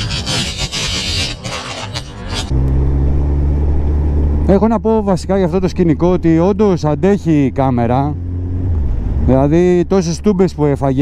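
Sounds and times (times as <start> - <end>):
music: 0.0 - 2.5.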